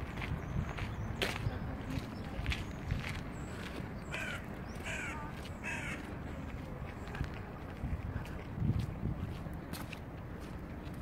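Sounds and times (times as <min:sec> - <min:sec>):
low outdoor background noise: 0:00.0 - 0:11.0
bird calling harshly: 0:04.1 - 0:06.0.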